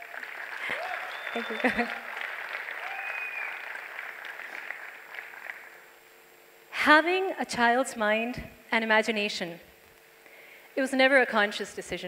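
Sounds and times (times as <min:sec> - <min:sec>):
audience applause: 0:00.0 - 0:05.8.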